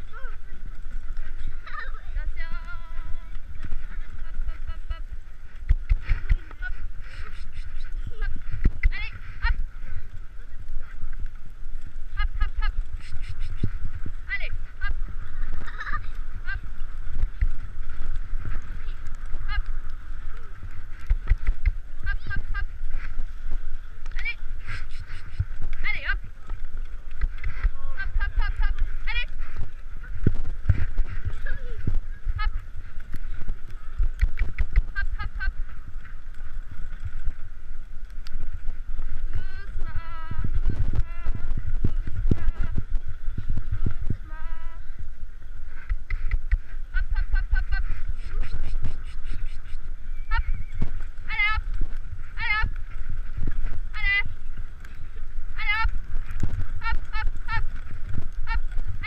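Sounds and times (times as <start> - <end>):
horse hooves thudding on snow: 0.0 - 59.0
microphone shaking rumble: 0.0 - 59.0.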